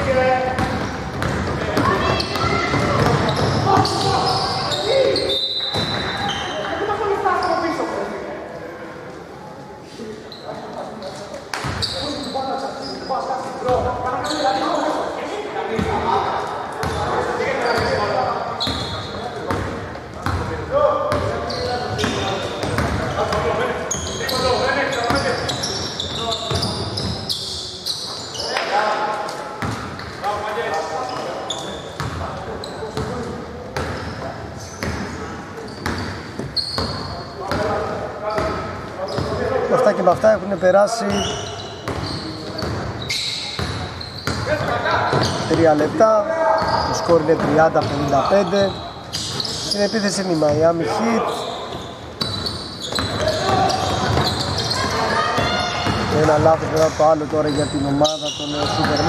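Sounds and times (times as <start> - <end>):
shoes squeaking: 0.0 - 8.0, 9.8 - 15.2, 15.8 - 19.6, 21.1 - 59.0
basketball bouncing on hardwood: 0.6 - 3.9.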